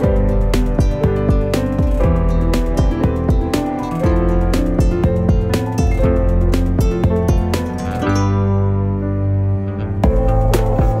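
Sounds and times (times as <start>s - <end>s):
music beat: 0.0s - 8.7s, 10.0s - 11.0s
guitar chord ringing: 0.0s - 11.0s.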